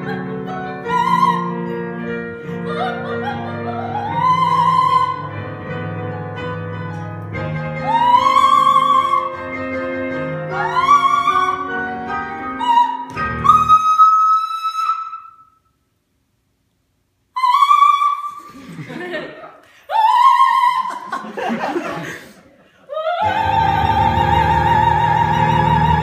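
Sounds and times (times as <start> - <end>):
soprano singing operatic notes: 0.0 - 5.8, 7.7 - 15.5, 19.9 - 21.1, 22.9 - 26.0
piano chords: 0.0 - 14.0, 23.2 - 26.0.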